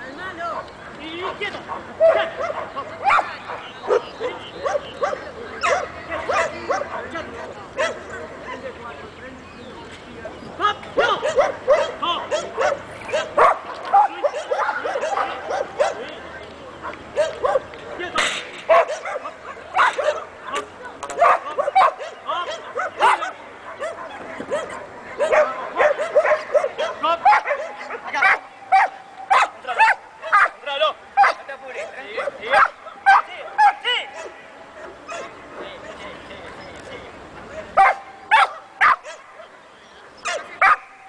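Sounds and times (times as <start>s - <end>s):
dog barking: 1.2s - 8.6s, 11.0s - 16.1s, 17.2s - 17.7s, 18.7s - 30.6s, 31.2s - 35.7s, 37.8s - 39.5s, 40.2s - 40.9s.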